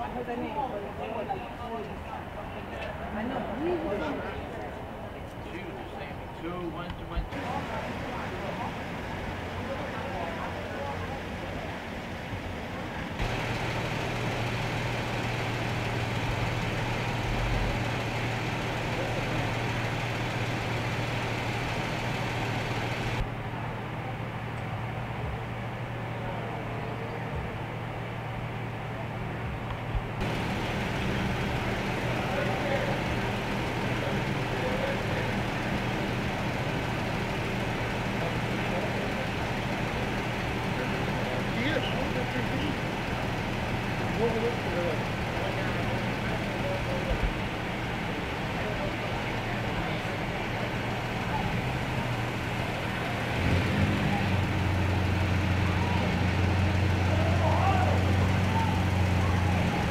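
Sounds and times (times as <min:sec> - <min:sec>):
faint voices: 0:00.0 - 0:59.9
engine idling hum: 0:06.0 - 0:59.9.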